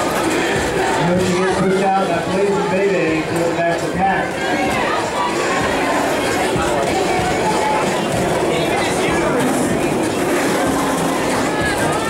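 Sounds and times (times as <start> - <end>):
crowd voices: 0.0 - 12.0
roller-skate wheels on wooden floor: 3.2 - 12.0.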